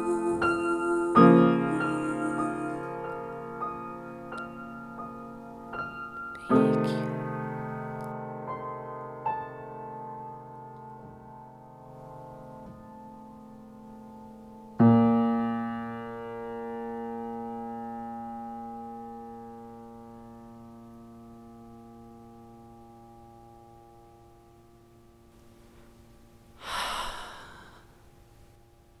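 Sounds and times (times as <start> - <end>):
person sighing: 26.6 - 28.0.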